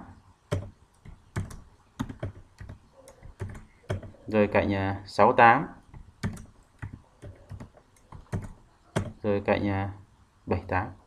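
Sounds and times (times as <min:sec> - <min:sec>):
computer keyboard typing: 0:00.5 - 0:04.3, 0:05.8 - 0:09.3.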